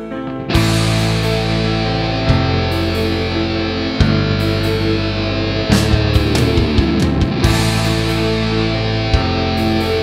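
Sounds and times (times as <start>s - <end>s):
heavy guitar chords: 0.0s - 10.0s.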